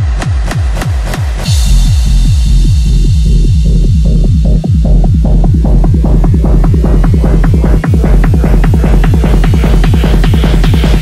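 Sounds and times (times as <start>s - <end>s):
pounding techno kick: 0.0s - 11.0s
rolling bass: 0.0s - 11.0s.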